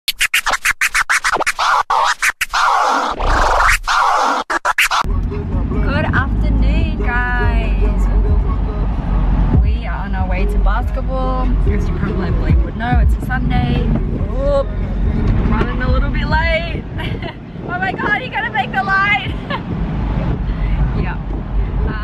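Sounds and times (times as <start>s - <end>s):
turntable scratching: 0.1s - 5.1s
wind and road noise: 2.4s - 22.0s
voices: 9.6s - 14.8s, 17.7s - 19.5s.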